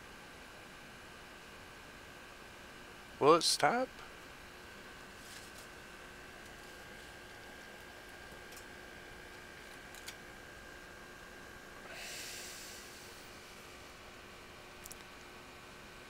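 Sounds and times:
short breath: 11.8s - 13.2s
faint hiss: 11.8s - 13.9s.

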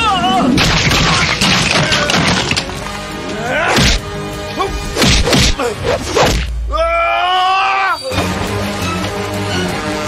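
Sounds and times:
loud action film music: 0.0s - 6.9s, 7.9s - 10.0s.

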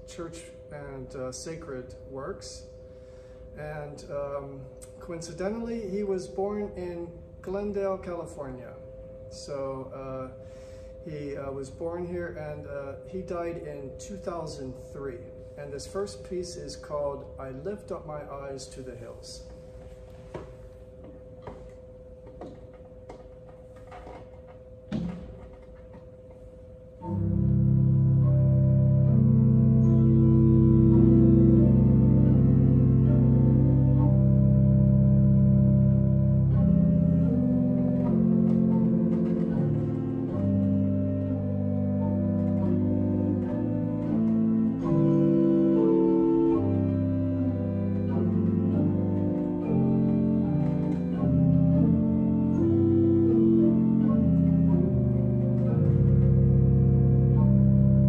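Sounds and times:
deep organ pedal note: 0.0s - 20.0s, 20.6s - 58.0s
church organ chords: 0.0s - 58.0s.

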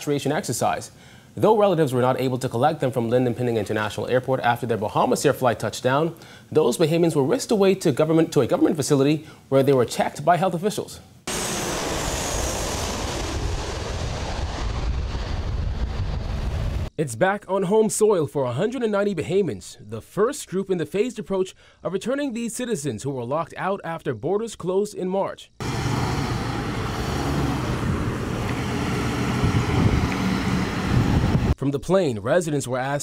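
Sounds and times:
jet airliner engine roar: 11.3s - 16.9s, 25.6s - 31.6s
road noise: 25.6s - 31.6s
wind on microphone: 26.6s - 31.6s.

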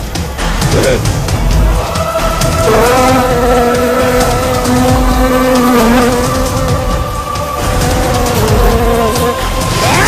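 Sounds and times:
film music: 0.0s - 10.0s
honeybees buzzing: 1.6s - 10.0s.

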